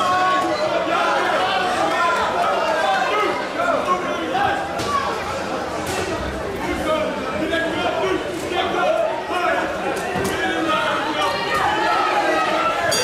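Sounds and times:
crowd talking and calling out: 0.0s - 13.0s.

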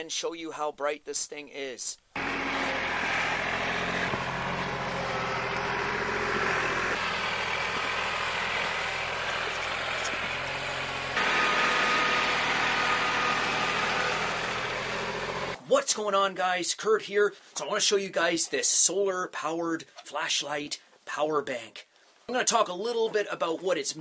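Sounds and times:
tractor diesel engine running: 2.2s - 15.6s.

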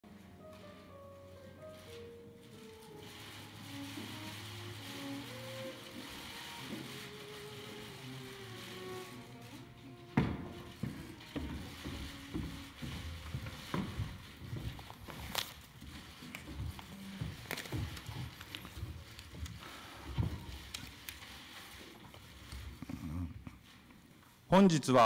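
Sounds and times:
faint background music: 0.0s - 23.4s.

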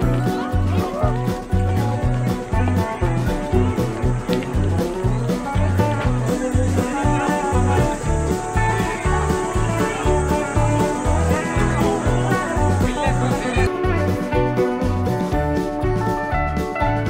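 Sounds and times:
background music with bass beat: 0.0s - 17.0s.

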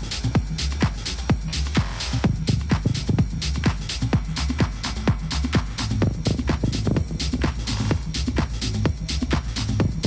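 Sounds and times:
four-on-the-floor kick drum: 0.0s - 10.0s
techno music: 0.0s - 10.0s.

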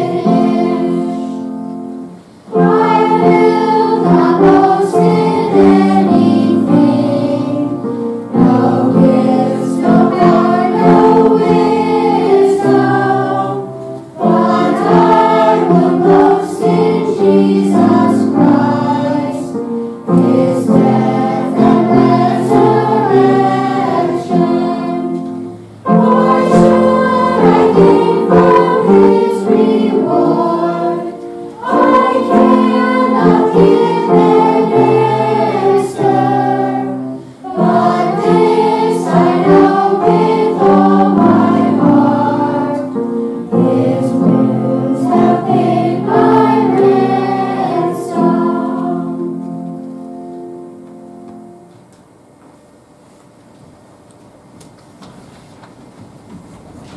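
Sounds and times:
children's choir singing: 0.0s - 51.9s.

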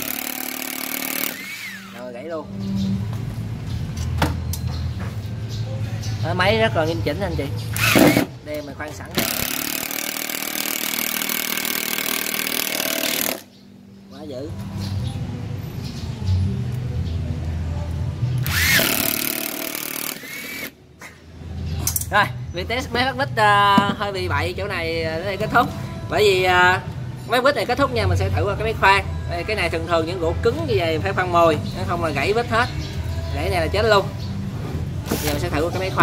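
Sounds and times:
cordless screwdriver driving screw: 0.0s - 2.0s, 7.8s - 8.3s, 18.4s - 20.7s
sharp metallic clicks: 9.1s - 13.5s.

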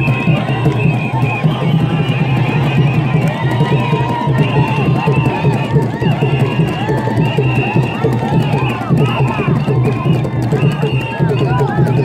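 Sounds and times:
crowd noise: 0.0s - 12.0s
crowd singing and calling out: 0.0s - 12.0s.

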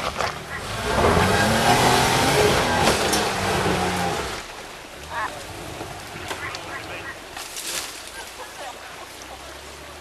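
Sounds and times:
engine revving under load: 0.0s - 4.5s.

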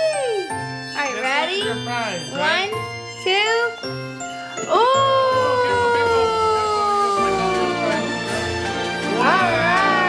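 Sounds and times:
background music with jingling: 0.0s - 10.0s.

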